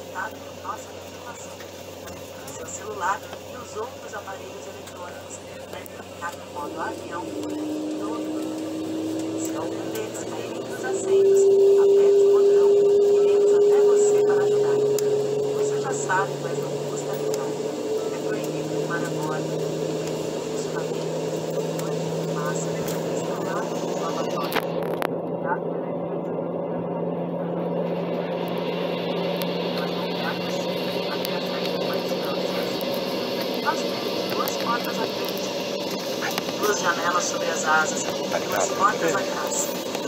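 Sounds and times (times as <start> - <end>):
jet engines humming: 0.0 - 40.0
low engine whine: 0.0 - 40.0.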